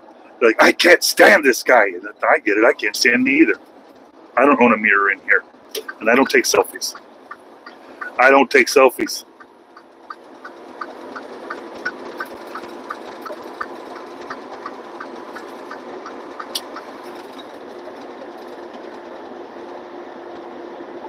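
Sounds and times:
truck road and engine noise: 0.0s - 21.0s
light regular ticking: 9.3s - 17.8s.

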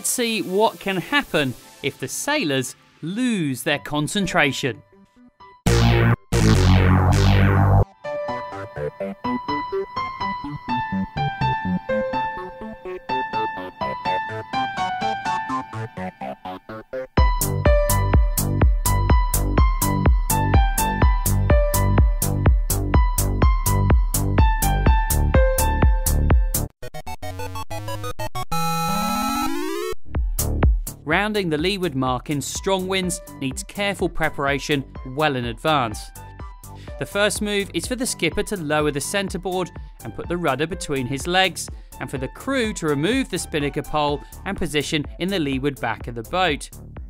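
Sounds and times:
synthesizer chord hit: 5.4s - 30.6s
held synth chord with falling sweep: 5.7s - 7.8s.

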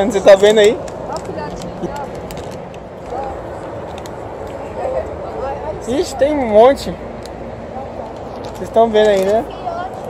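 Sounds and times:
outdoor background rush: 0.0s - 10.0s
people talking: 7.8s - 10.0s.

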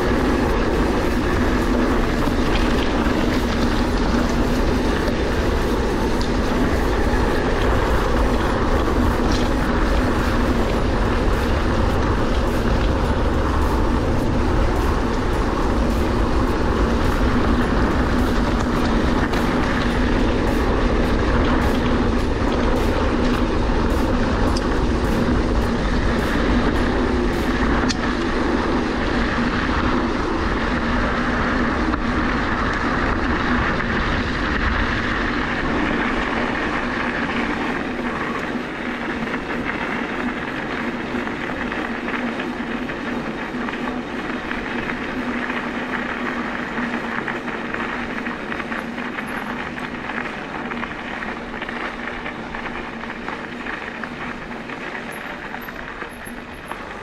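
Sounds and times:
bike tyres rumbling on trail: 0.0s - 57.0s.

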